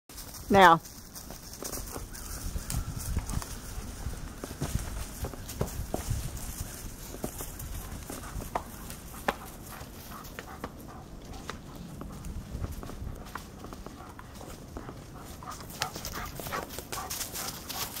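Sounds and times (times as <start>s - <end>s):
hooves clopping on rock: 0.1s - 18.0s.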